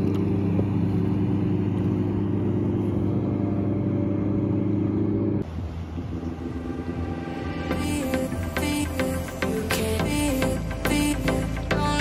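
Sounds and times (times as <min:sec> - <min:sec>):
motorboat engine running: 0:00.0 - 0:12.0.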